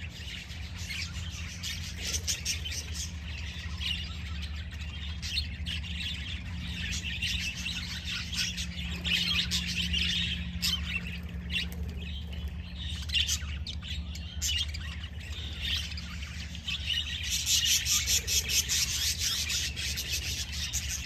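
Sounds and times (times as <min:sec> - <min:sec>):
budgerigars chattering and chirping: 0:00.0 - 0:21.0
steady low hum: 0:00.0 - 0:21.0.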